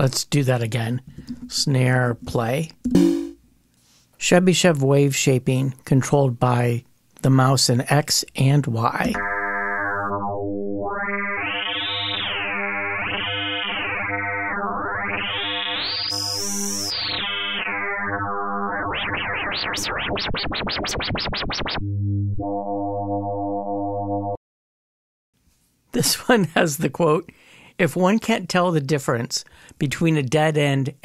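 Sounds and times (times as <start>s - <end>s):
buzzy synthesizer tone: 9.0s - 24.4s.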